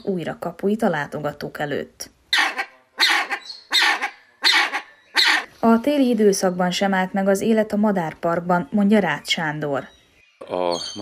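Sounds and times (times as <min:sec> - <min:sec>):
bird harsh bark-like calls: 0:02.3 - 0:05.5, 0:10.4 - 0:11.0.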